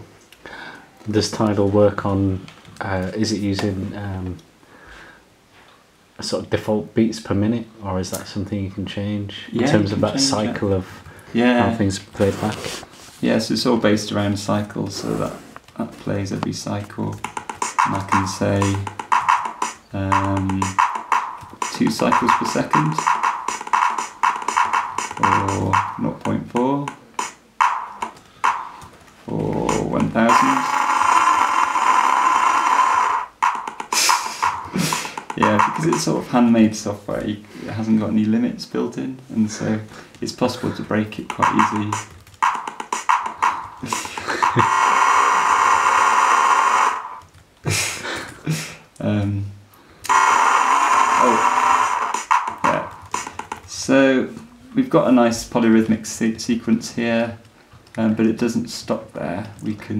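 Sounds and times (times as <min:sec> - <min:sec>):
electronic drum pattern: 0:17.1 - 0:36.5, 0:41.2 - 0:47.3, 0:50.1 - 0:53.8
buzz of retriggered samples: 0:29.7 - 0:36.0, 0:50.1 - 0:53.6.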